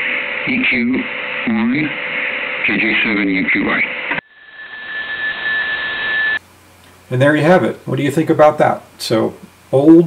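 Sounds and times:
radio receiver hiss: 0.0s - 7.1s
steady high whistle: 4.2s - 6.4s.

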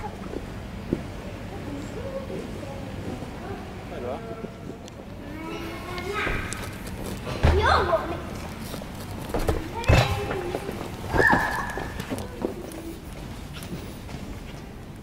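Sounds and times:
children shouting and squealing: 11.1s - 12.4s.

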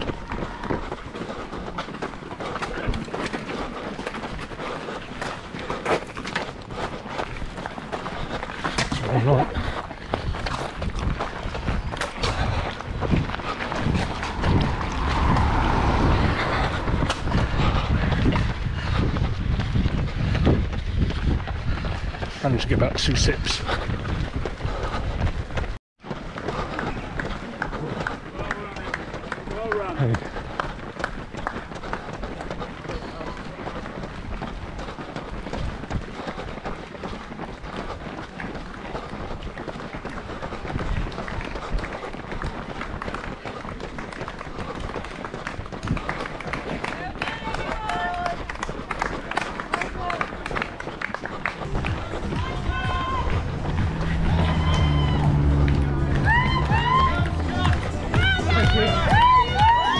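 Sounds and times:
running footsteps on tarmac: 0.0s - 59.9s
voices of spectators and runners: 0.0s - 59.9s
music: 53.3s - 59.9s.

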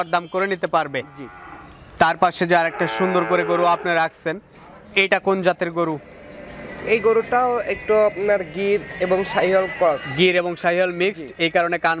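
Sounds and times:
cattle mooing: 1.0s - 1.9s, 2.6s - 4.0s.

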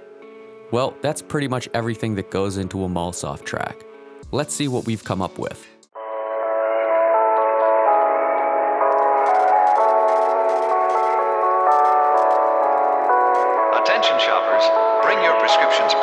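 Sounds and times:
store announcement: 0.7s - 3.8s, 13.6s - 16.0s.

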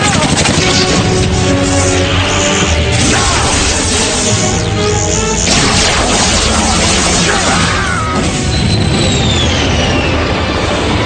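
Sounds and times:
dramatic cartoon action music: 0.0s - 11.0s
crashing booming effects: 5.5s - 9.1s.

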